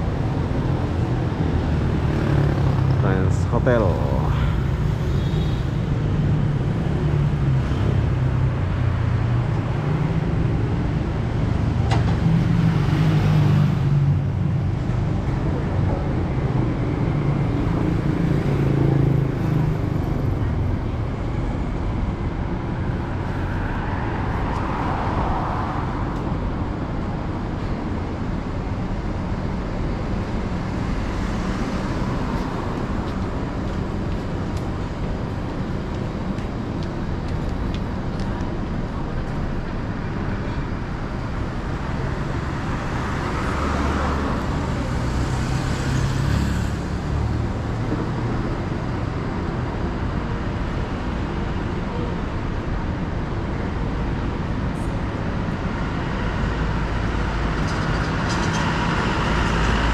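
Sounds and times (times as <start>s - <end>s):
road noise from passing cars: 0.0s - 59.9s.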